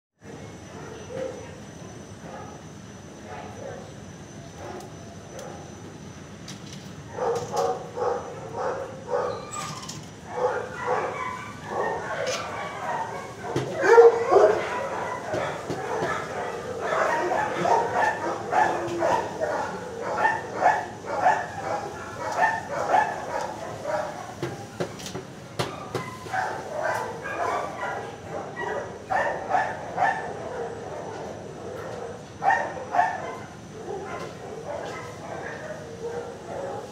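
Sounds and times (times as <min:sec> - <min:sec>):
dogs barking and yipping: 0:07.1 - 0:36.9.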